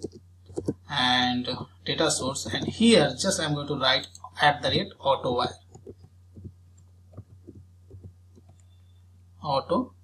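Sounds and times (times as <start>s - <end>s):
soft keyboard keystrokes: 0.0s - 0.8s, 5.6s - 8.7s
low electrical hum: 0.0s - 10.0s.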